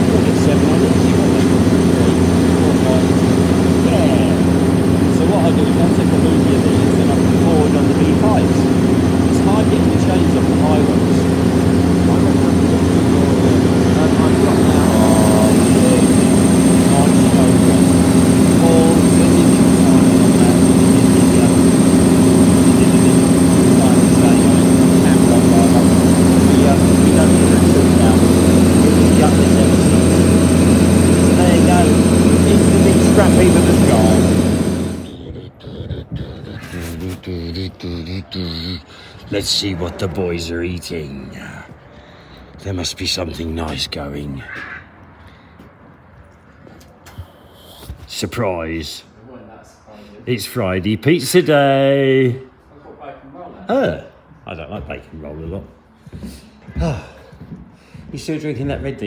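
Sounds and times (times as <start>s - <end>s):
heavy vehicle engine droning: 0.0s - 43.6s.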